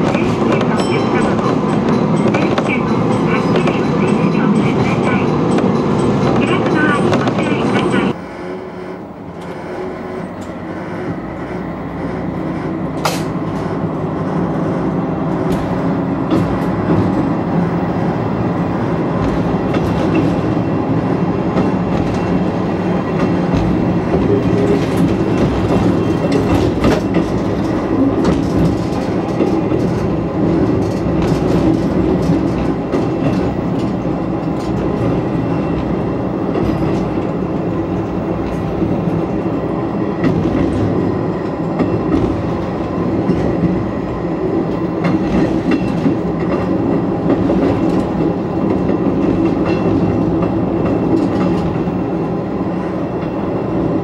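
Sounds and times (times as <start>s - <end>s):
train engine rumble: 0.0s - 54.0s
wheels clicking over rail joints: 19.0s - 39.5s, 44.6s - 51.9s.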